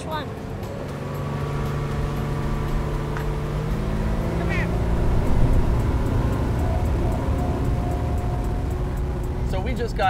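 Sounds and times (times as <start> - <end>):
boat engine running: 0.0 - 10.0.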